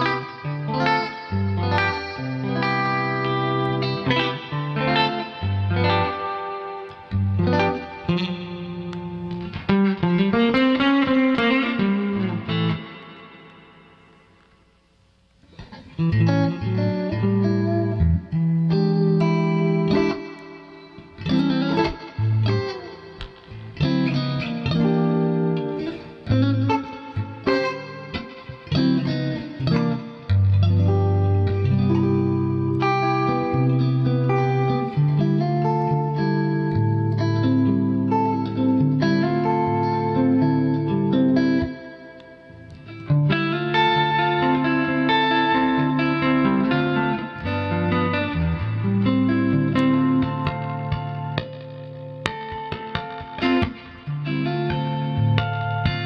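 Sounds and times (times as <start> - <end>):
electric guitar through amplifier: 0.0 - 56.0.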